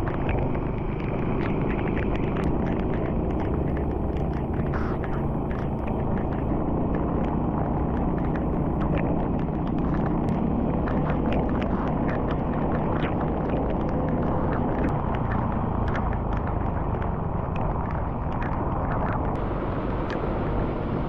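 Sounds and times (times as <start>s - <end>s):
faint ticks: 0.0s - 19.4s
tyres on wet road: 0.0s - 21.0s.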